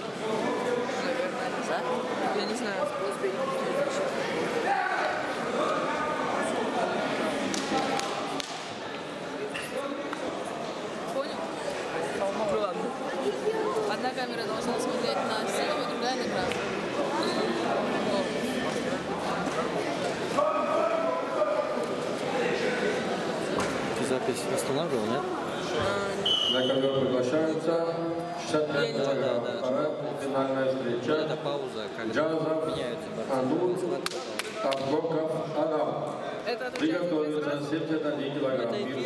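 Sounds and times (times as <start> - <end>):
people talking in echoing hall: 0.0 - 39.0.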